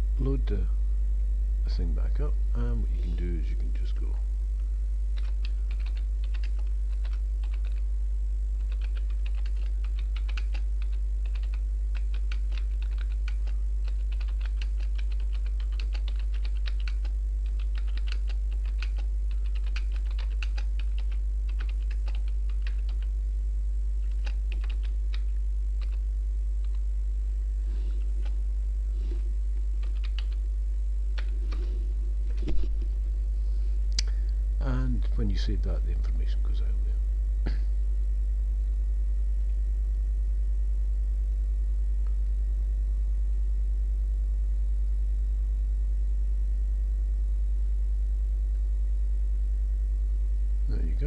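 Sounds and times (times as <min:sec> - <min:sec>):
low hum: 0:00.0 - 0:51.0
typing on computer keyboard: 0:05.2 - 0:07.8, 0:08.6 - 0:23.1, 0:24.0 - 0:25.2, 0:25.8 - 0:26.0, 0:29.8 - 0:30.4.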